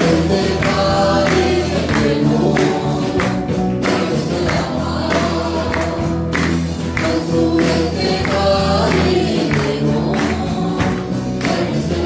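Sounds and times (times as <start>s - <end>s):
people singing over music: 0.0s - 12.0s
percussion beat: 0.0s - 12.0s.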